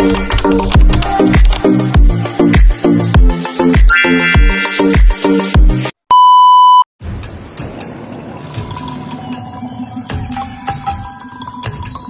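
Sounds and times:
electronic music with kick drum: 0.1 - 5.9, 9.8 - 12.0
loud electronic beep: 3.9 - 5.1.

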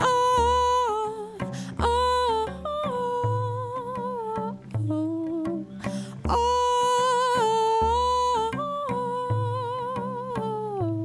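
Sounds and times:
cello: 0.0 - 11.0
singer breathing in: 1.5 - 1.8, 5.7 - 6.2.

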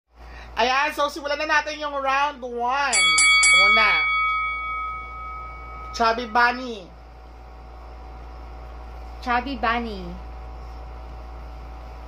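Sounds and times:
bell ringing: 2.9 - 6.9.

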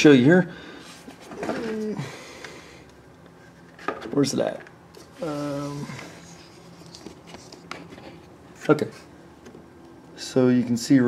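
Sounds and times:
man humming: 5.2 - 6.2.

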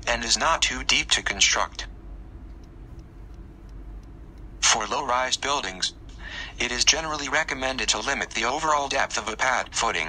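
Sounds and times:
engine running: 0.6 - 10.0
faint ticks: 2.5 - 4.5.

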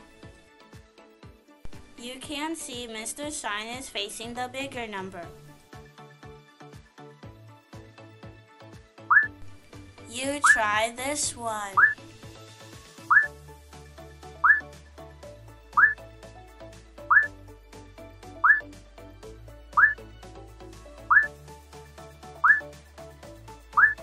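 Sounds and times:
upbeat background music: 0.0 - 24.0
short rising whistle-like note: 9.1 - 9.3, 17.1 - 17.3.

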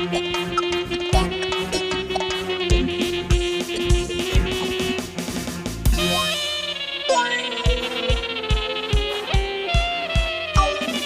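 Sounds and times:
saxophone melody: 0.0 - 11.0
kick drum beat: 1.1 - 1.5, 2.7 - 4.8, 7.7 - 10.9.

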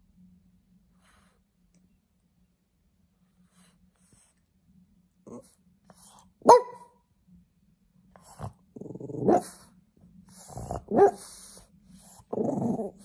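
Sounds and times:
dog barking: 6.4 - 7.0, 9.2 - 9.6, 10.9 - 11.4.

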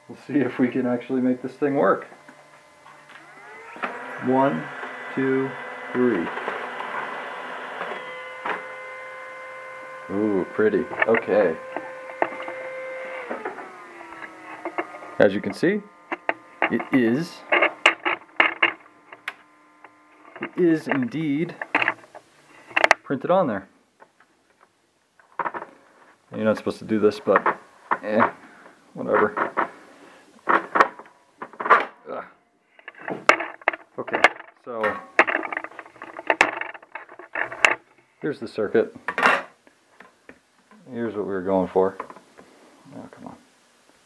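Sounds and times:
printer mechanical whine: 1.9 - 21.1
sharp clicks and knocks: 13.2 - 23.0, 32.8 - 37.8.

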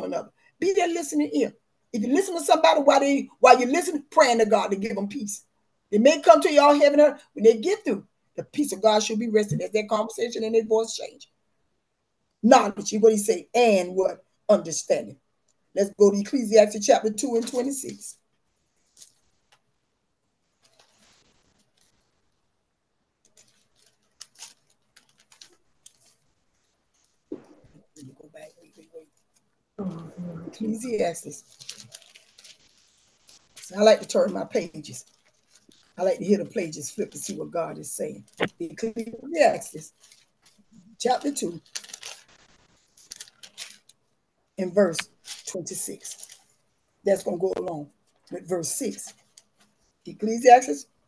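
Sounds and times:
book pages turning: 18.8 - 19.7, 20.5 - 22.3, 23.2 - 29.3, 30.6 - 37.4, 38.2 - 44.0.

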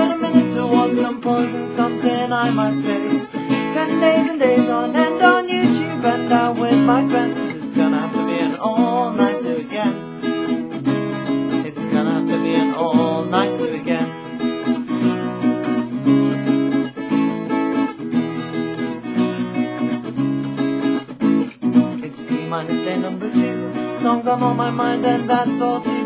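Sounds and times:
acoustic guitar strumming: 0.0 - 26.0.

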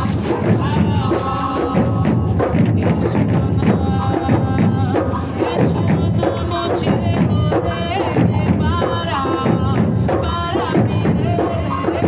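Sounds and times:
percussion ensemble drum groove: 0.0 - 12.0.

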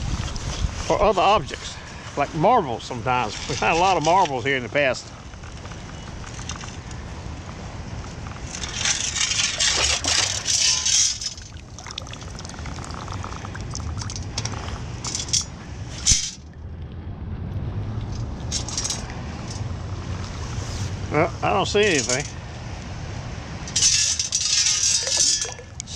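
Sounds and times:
wind: 0.0 - 25.9
water sloshing from metal scoop: 8.4 - 16.4, 23.7 - 25.9
low rumble of water: 9.6 - 15.0.

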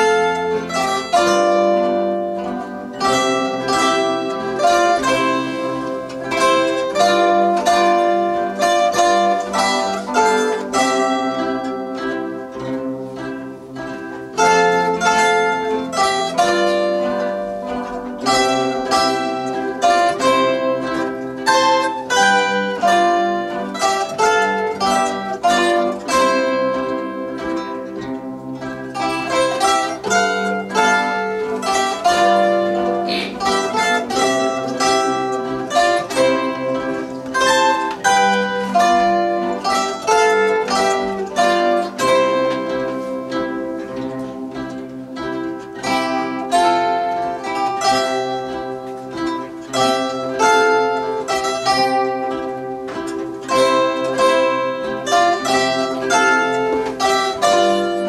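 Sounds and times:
zithers playing a folk tune: 0.0 - 58.0.

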